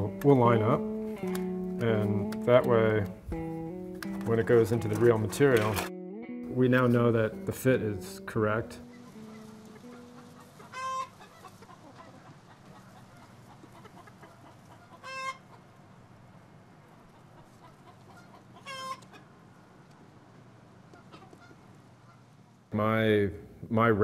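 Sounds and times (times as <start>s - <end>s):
chickens clucking: 8.8s - 15.8s, 16.8s - 20.1s, 20.8s - 22.3s.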